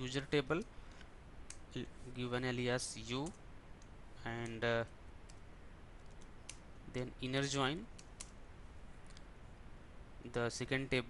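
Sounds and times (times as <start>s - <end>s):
computer keyboard keystrokes: 6.0s - 6.6s.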